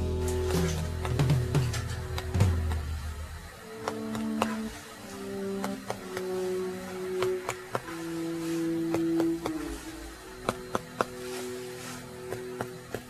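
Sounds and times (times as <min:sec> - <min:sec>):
soft background music: 0:00.0 - 0:13.0
finger tapping on chest: 0:03.8 - 0:04.7, 0:05.6 - 0:06.4, 0:07.0 - 0:08.0, 0:08.8 - 0:09.8, 0:10.4 - 0:11.4.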